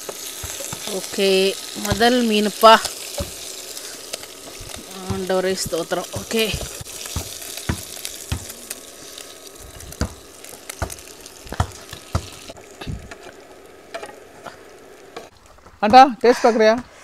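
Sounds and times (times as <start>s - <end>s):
hot oil sizzling in a frying pan: 0.0s - 15.8s.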